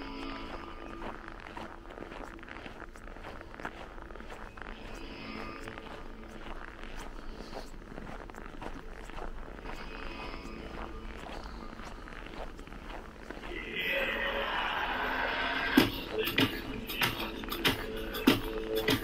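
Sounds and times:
footsteps crunching on snow: 0:00.0 - 0:19.0.

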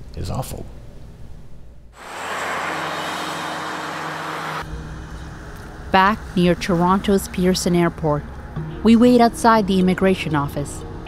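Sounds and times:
road traffic rushing: 0:02.0 - 0:08.6.

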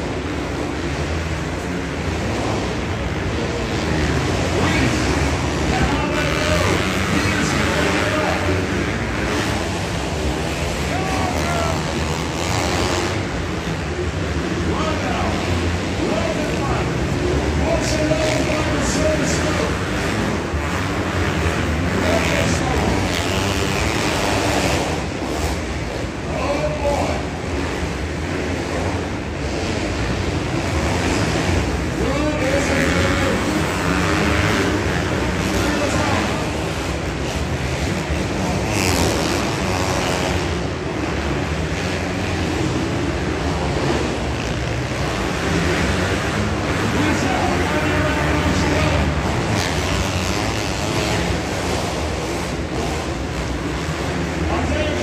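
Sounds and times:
echoing arena noise: 0:00.0 - 0:55.0
motocross bikes revving: 0:00.0 - 0:55.0.

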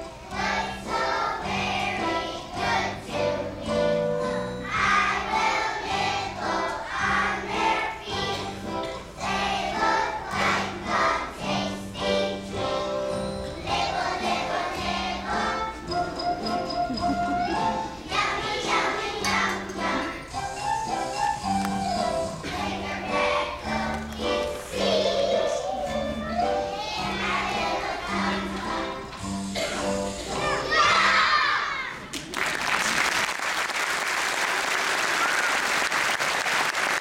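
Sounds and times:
musical accompaniment: 0:00.0 - 0:31.3
children's choir singing: 0:00.0 - 0:32.0.

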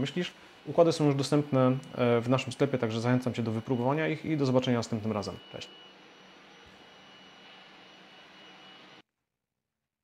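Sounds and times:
thin high whine: 0:00.0 - 0:09.0.

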